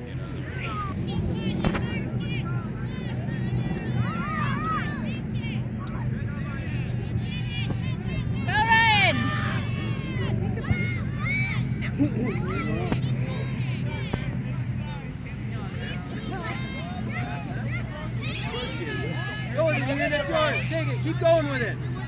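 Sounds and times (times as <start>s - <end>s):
steady low rumble: 0.0s - 22.0s
children shouting: 0.4s - 6.0s, 6.6s - 15.0s, 15.6s - 22.0s.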